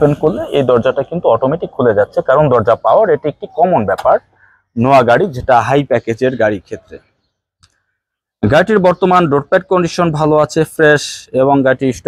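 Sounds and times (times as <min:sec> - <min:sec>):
man speaking: 0:00.0 - 0:07.0, 0:08.4 - 0:12.0.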